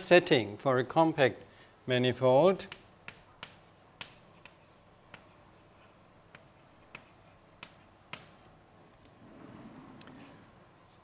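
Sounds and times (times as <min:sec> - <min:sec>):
faint room hiss: 0:00.0 - 0:11.0
chalk clicking on blackboard: 0:02.6 - 0:08.5.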